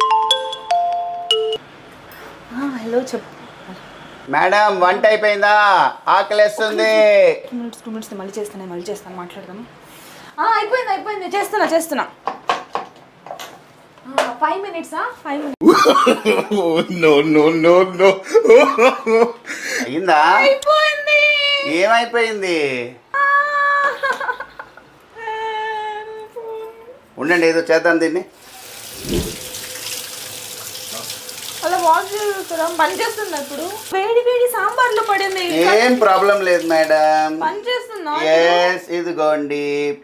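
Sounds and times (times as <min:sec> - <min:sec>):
tap water pouring into steel sink: 0:28.4 - 0:34.0, 0:34.7 - 0:37.1.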